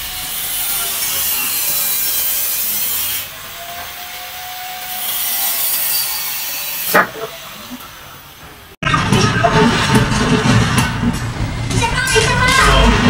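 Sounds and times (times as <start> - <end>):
angle grinder cutting metal: 0.0 - 8.2.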